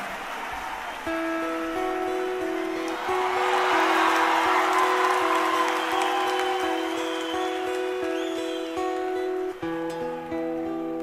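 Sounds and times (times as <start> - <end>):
audience applauding and cheering: 0.0 - 9.8.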